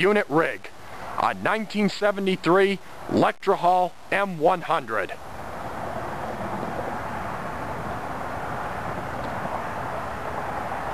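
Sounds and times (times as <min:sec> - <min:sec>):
steady outdoor background roar: 0:00.0 - 0:10.9.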